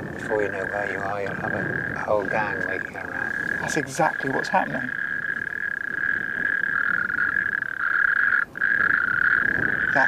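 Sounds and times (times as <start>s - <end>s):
toads calling in chorus: 0.0s - 10.0s.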